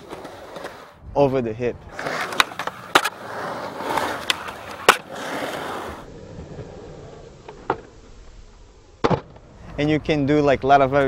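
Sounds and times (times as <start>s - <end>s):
skateboard wheels rolling on concrete: 0.0s - 11.0s
skateboard clacks: 2.1s - 3.2s, 3.9s - 5.6s.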